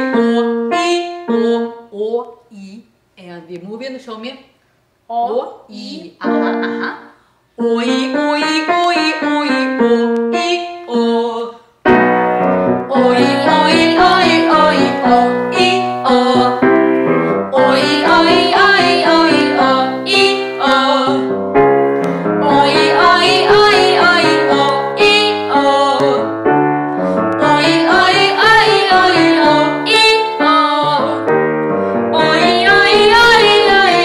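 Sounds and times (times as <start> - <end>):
grand piano playing: 11.8 - 34.0
voices singing open vowel: 12.9 - 16.8, 17.5 - 21.4, 22.1 - 26.4, 27.0 - 31.3, 32.1 - 34.0.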